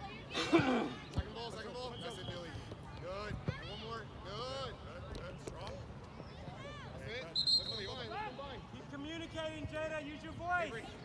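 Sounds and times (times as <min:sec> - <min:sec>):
spectators calling out and chattering: 0:00.0 - 0:11.0.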